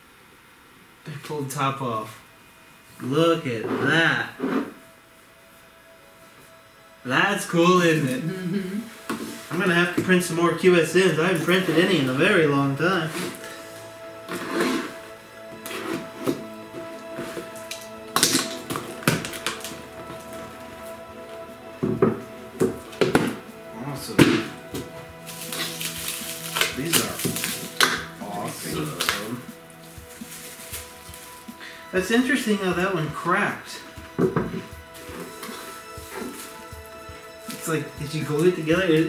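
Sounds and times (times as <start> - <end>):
background music with held tones: 0.0 - 39.0
plastic wrapping rustling: 7.8 - 39.0
cardboard box scraping and knocking: 14.2 - 17.5.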